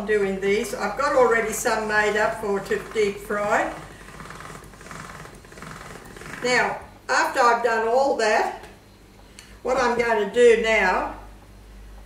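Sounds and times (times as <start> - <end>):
pasta machine clicking: 1.3 - 6.8.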